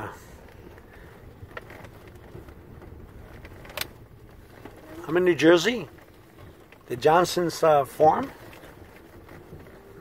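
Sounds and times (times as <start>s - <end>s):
car rolling rumble inside cabin: 0.0s - 10.0s.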